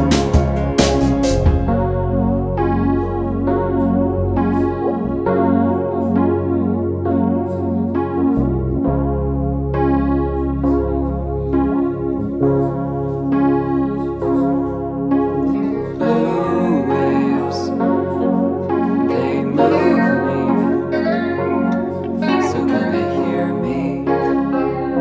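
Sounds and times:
low bass notes: 0.0 - 25.0
piano chords: 0.0 - 25.0.

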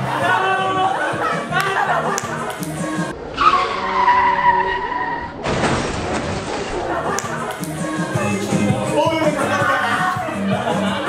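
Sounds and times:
tyre screech: 3.2 - 5.4.

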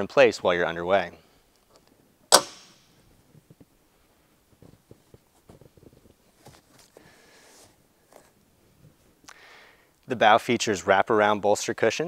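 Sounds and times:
locker lid shutting: 2.3 - 2.8.

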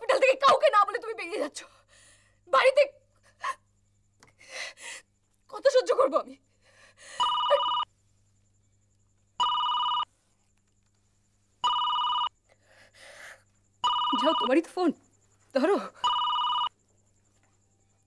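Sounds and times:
telephone ringing: 7.2 - 7.9, 9.4 - 10.1, 11.6 - 12.3, 13.8 - 14.5, 16.0 - 16.8.

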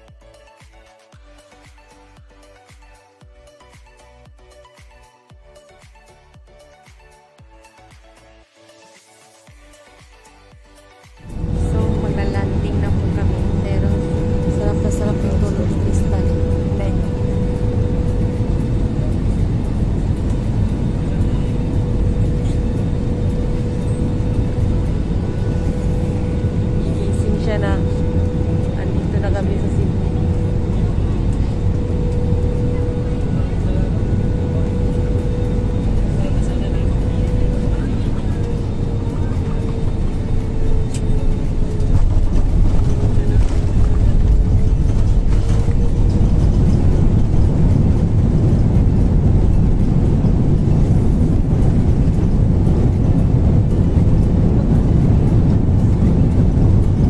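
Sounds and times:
airliner engine rumble: 11.2 - 57.0
constant cabin hum: 11.2 - 57.0.

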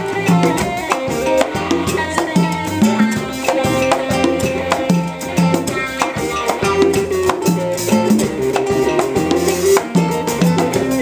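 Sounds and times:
drum kit: 0.0 - 11.0
electric guitar: 0.0 - 11.0
low bass line: 0.0 - 11.0.

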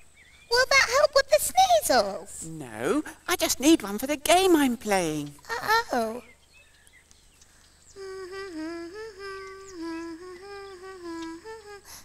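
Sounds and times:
person humming a tune: 8.0 - 12.0.

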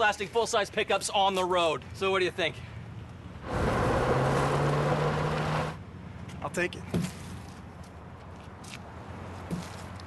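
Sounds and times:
truck engine: 3.4 - 5.8.

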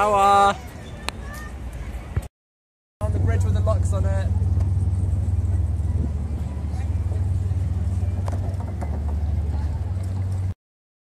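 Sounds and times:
faint voices: 3.0 - 10.5
wind rumbling on microphone: 3.0 - 10.6.

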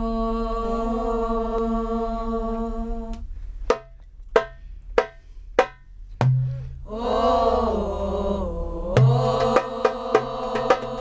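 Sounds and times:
girls singing a long note: 0.0 - 3.2, 6.8 - 11.0
low steady hum: 0.0 - 11.0
sharp percussive beats: 3.7 - 6.8, 9.0 - 11.0.

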